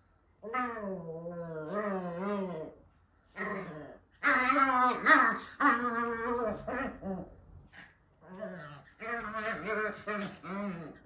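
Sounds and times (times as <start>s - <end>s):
small dog growling: 0.4s - 11.0s.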